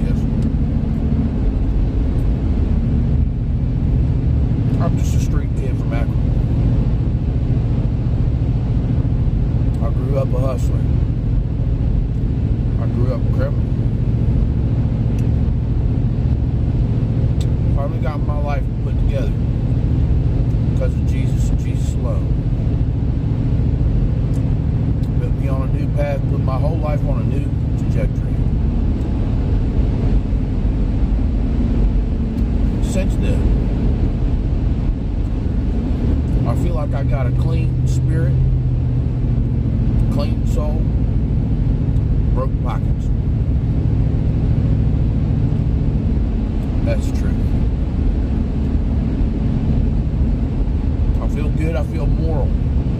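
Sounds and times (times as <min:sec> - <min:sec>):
vehicle engine rumbling: 0:00.0 - 0:52.9.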